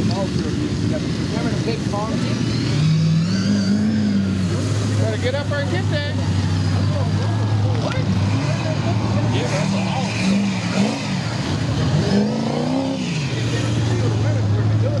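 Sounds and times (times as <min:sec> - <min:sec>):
people talking: 0:00.0 - 0:02.6, 0:04.4 - 0:15.0
diesel truck engine revving: 0:00.0 - 0:15.0.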